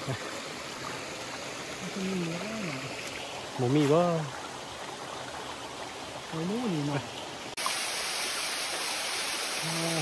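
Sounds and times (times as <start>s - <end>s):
stream rushing over rocks: 0.0s - 10.0s
waterfall splashing over rock: 0.0s - 10.0s.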